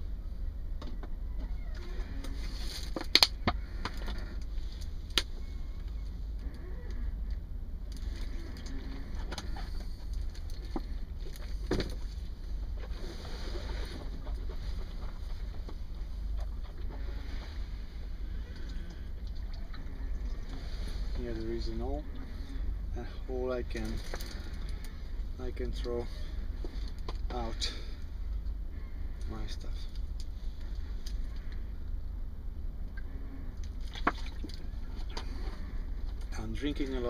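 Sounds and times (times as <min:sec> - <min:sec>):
steady low rumble: 0:00.0 - 0:37.0
faint clicks and rustles: 0:00.8 - 0:22.9, 0:23.7 - 0:32.0.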